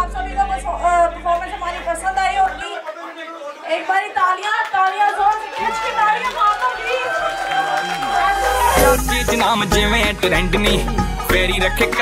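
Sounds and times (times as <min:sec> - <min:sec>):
woman speaking through microphone: 0:00.0 - 0:02.8, 0:03.6 - 0:07.1
crowd chatter in a hall: 0:00.0 - 0:09.3
low bass tone: 0:08.6 - 0:11.8.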